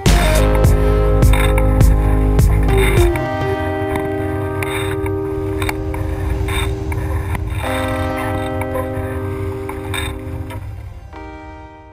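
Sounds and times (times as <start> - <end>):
held music chords: 0.0 - 11.9
low rumble: 5.1 - 11.2.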